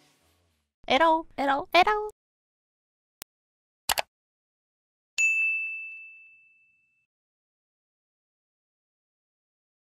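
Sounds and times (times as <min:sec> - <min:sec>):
notification bell ding: 0:05.2 - 0:07.1.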